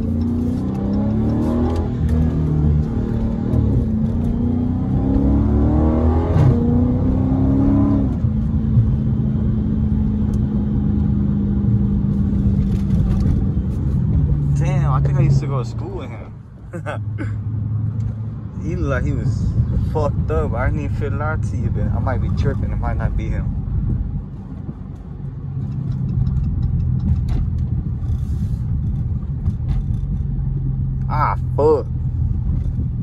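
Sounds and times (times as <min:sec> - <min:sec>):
car engine drone in cabin: 0:00.0 - 0:33.0.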